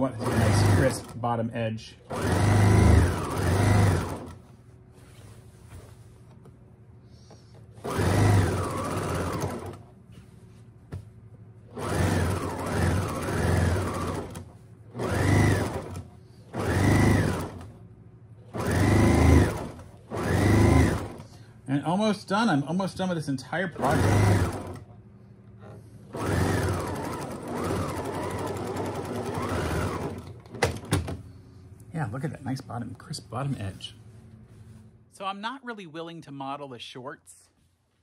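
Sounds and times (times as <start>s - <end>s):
sewing machine stitching: 0.0s - 1.2s, 2.1s - 4.4s, 7.8s - 9.9s, 11.7s - 17.8s, 18.5s - 21.3s, 23.8s - 24.9s, 25.6s - 31.1s.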